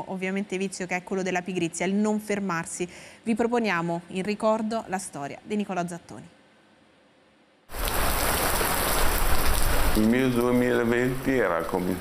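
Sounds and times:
heavy rain on muddy ground: 0:07.7 - 0:12.0.

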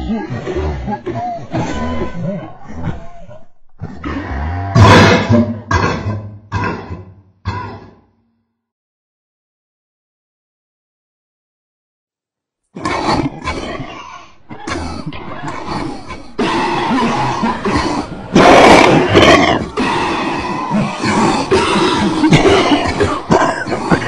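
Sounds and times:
person making vocal noises: 0:00.0 - 0:06.0, 0:14.5 - 0:24.0.

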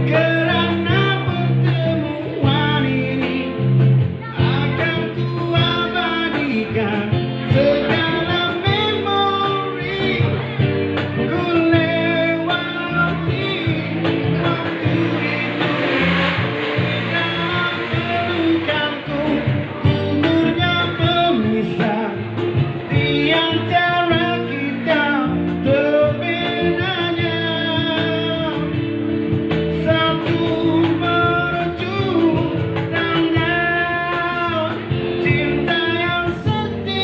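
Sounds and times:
bass guitar: 0:00.0 - 0:37.0
cajon: 0:00.0 - 0:37.0
guitars: 0:00.0 - 0:37.0
man singing into microphone: 0:00.0 - 0:37.0.

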